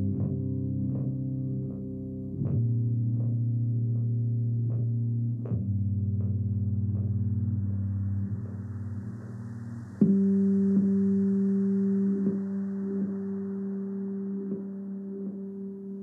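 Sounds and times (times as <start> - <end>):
slow ambient instrumental music: 0.0 - 16.0.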